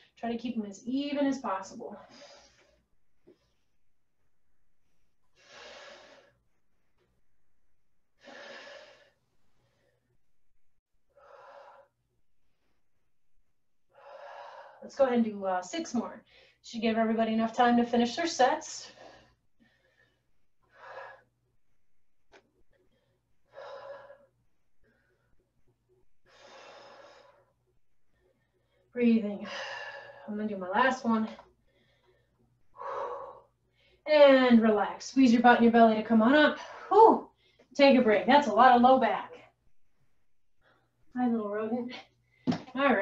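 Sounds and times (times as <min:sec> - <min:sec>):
woman breathing hard: 0:22.8 - 0:25.4, 0:26.2 - 0:30.3, 0:31.6 - 0:34.0.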